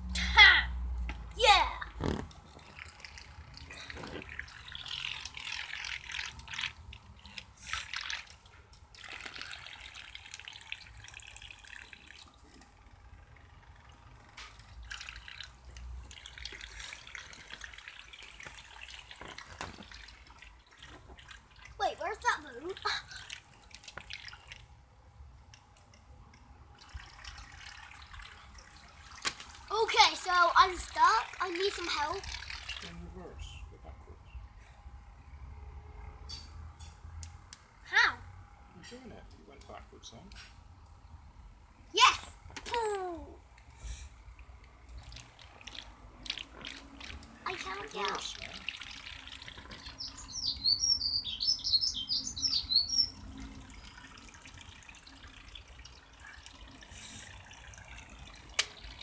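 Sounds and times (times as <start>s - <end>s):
faint water sounds from toy boats: 0.0s - 34.0s, 39.1s - 59.0s.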